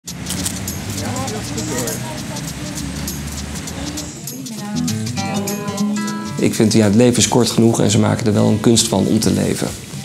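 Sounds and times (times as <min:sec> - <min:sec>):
road traffic rumble: 0:00.0 - 0:10.0
indistinct voices: 0:00.2 - 0:10.0.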